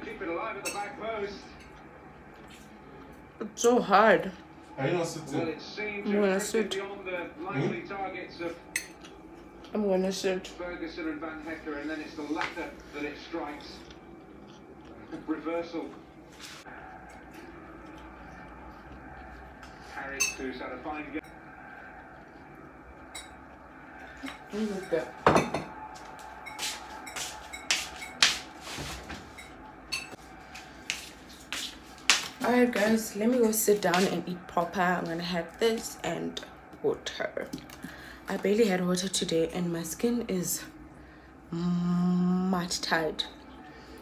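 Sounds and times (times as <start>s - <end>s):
fork clinking and scraping plate: 0.6s - 1.0s, 26.4s - 30.2s
dishes and cutlery clinking: 0.6s - 1.8s, 8.7s - 9.2s, 20.0s - 20.6s, 23.1s - 23.5s, 24.1s - 30.3s.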